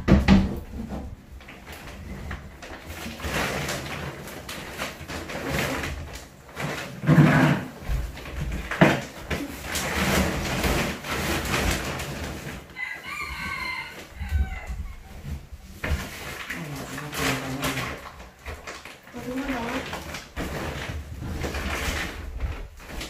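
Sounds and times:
knocks on wooden wardrobe: 0:00.0 - 0:00.9
plastic bags rustling and bumping: 0:00.0 - 0:23.0
rooster crowing: 0:12.7 - 0:15.0.

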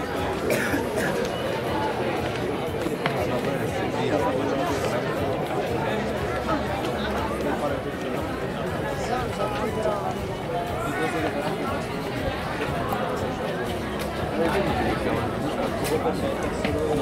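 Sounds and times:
murmur of overlapping voices: 0:00.0 - 0:17.0.

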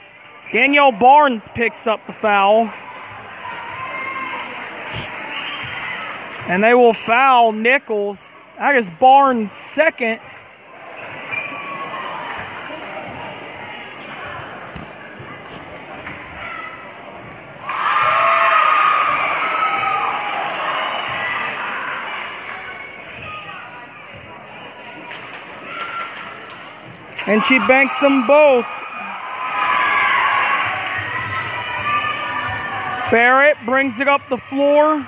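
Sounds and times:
crowd cheering and shouting: 0:00.0 - 0:14.0, 0:16.2 - 0:24.3, 0:25.0 - 0:35.0
crowd chatter: 0:00.0 - 0:35.0.

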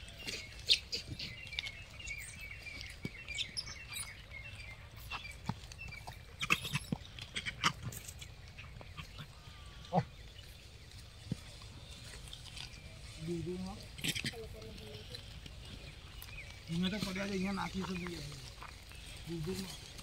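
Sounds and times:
faint outdoor background: 0:00.0 - 0:20.0
high chirping calls and squeaks: 0:00.1 - 0:10.0.

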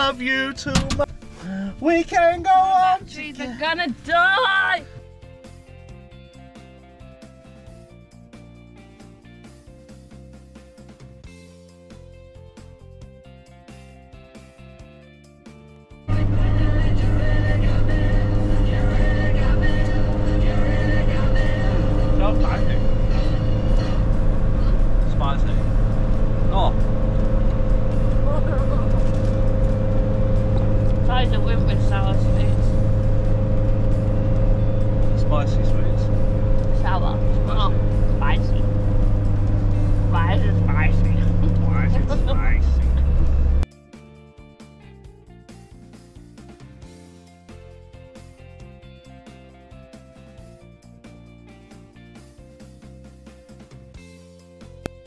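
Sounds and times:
steady hum: 0:16.1 - 0:43.6
engine and road drone: 0:16.1 - 0:43.7
voices talking: 0:35.1 - 0:38.8, 0:40.0 - 0:43.3.

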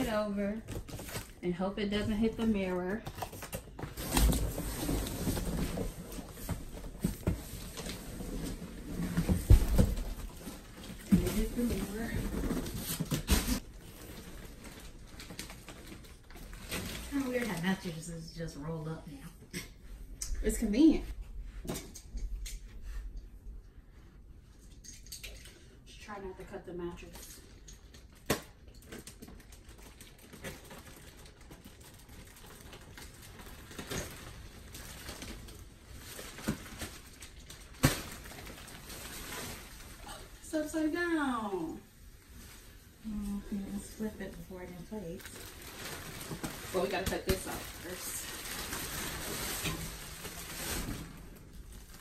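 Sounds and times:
plastic wrap crinkling: 0:00.0 - 0:18.5, 0:27.5 - 0:52.0.

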